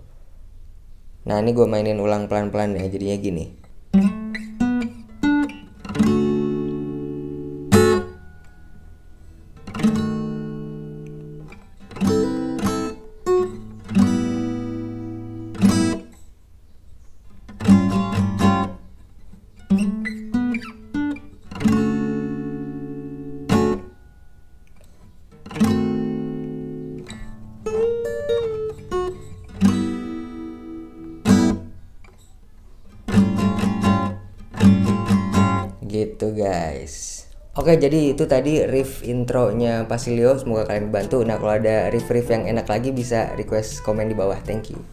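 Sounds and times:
acoustic guitar riff: 3.7s - 16.2s, 17.4s - 36.2s, 37.6s - 44.9s.

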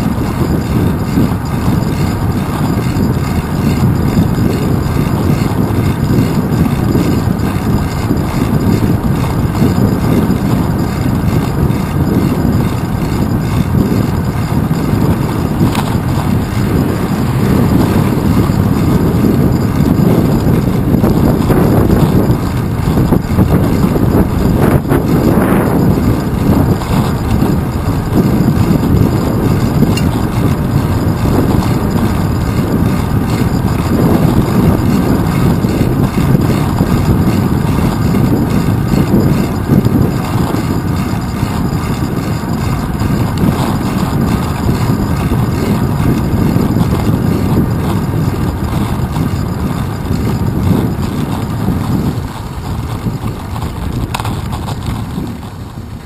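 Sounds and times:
road rumble: 0.0s - 56.0s
wind buffeting: 0.0s - 56.0s.

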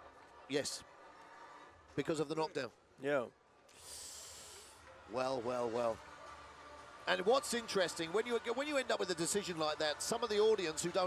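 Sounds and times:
breathy hiss on microphone: 3.7s - 4.8s.

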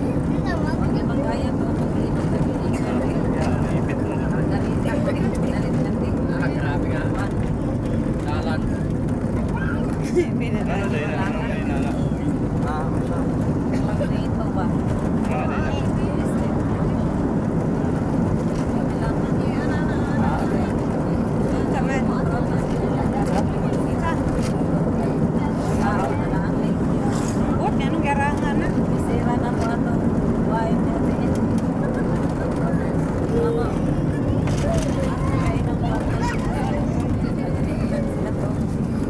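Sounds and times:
faint voices: 0.0s - 39.0s
vehicle engine and road rumble: 0.0s - 39.0s.

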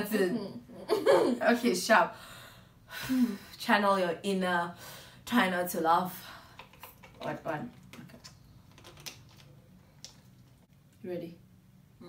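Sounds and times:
screw cap twisting: 6.6s - 10.2s
plastic bottle crackling: 6.6s - 10.6s.

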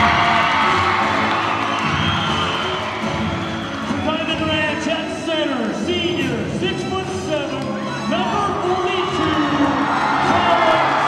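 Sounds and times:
crowd cheering and whooping: 0.0s - 4.0s, 9.0s - 11.0s
loud music over pa: 0.0s - 11.0s.

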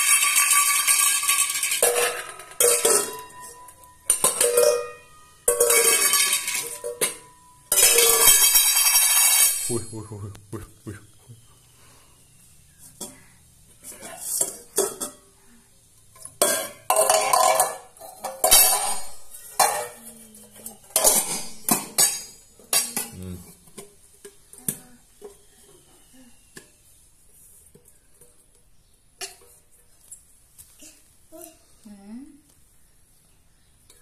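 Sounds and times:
steel bowls clanking: 0.0s - 10.0s, 16.1s - 23.7s.

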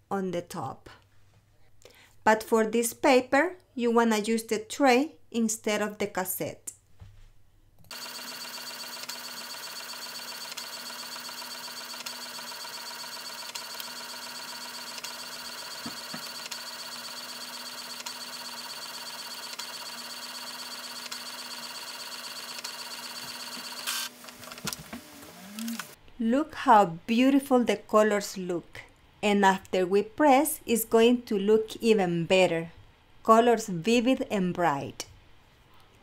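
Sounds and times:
inkjet printer whirring: 7.9s - 26.0s.

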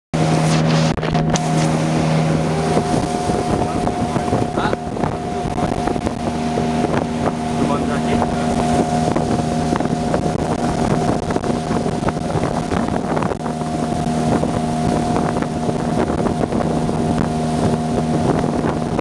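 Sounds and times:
outboard motor running: 0.1s - 19.0s
wind buffeting microphone: 0.2s - 19.0s.

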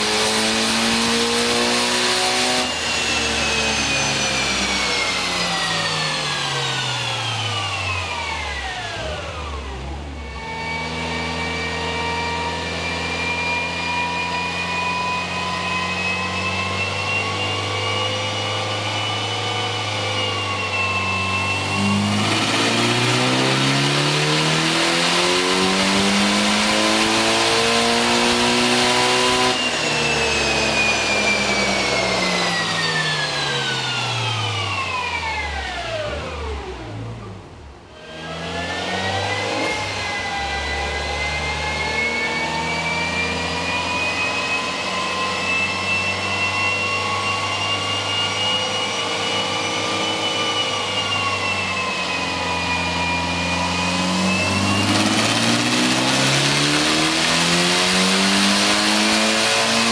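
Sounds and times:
car engine revving on dyno: 0.0s - 59.9s.

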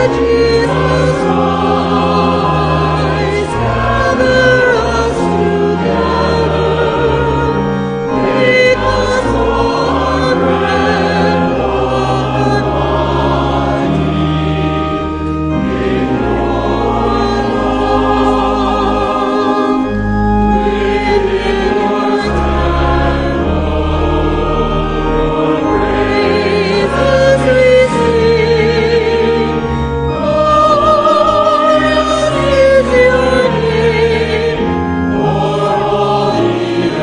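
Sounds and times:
congregation singing a hymn: 0.0s - 37.0s
sustained low accompaniment: 0.0s - 37.0s.

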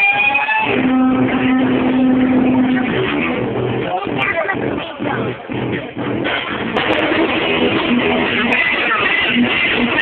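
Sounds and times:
drums: 0.0s - 10.0s
electric guitar: 0.0s - 10.0s.

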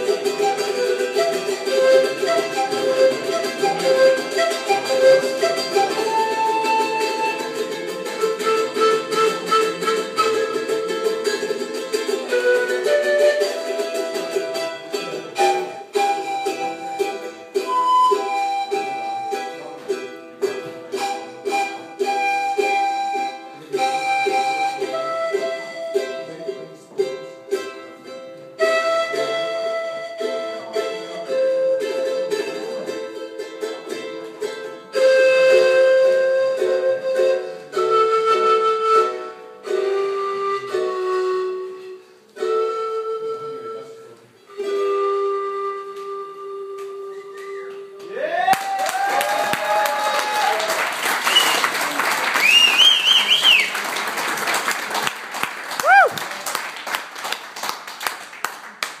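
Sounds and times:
stringed instrument melody: 0.0s - 48.1s
whistles from audience: 47.1s - 54.0s
audience applause and cheers: 48.1s - 59.0s.

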